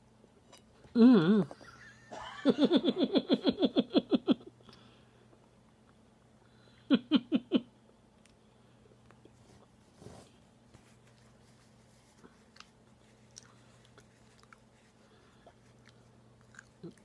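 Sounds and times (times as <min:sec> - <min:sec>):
man laughing: 0:01.6 - 0:04.5
man chewing: 0:12.3 - 0:17.0.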